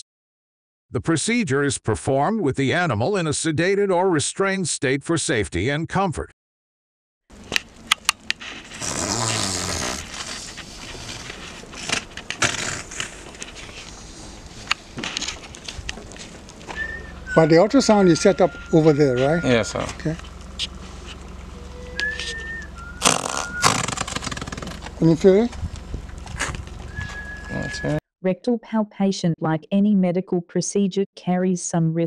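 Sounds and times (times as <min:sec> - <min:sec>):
gas escaping with whistle and hiss: 0:08.7 - 0:11.4, 0:21.7 - 0:24.4
horse passing gas hissing: 0:08.7 - 0:14.6, 0:23.0 - 0:24.8.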